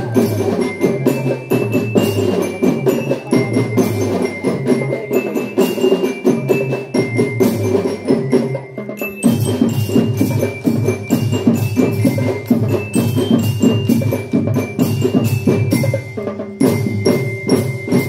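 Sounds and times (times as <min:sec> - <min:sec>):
glockenspiel melody: 0:00.0 - 0:18.0
marching drums: 0:00.0 - 0:18.0.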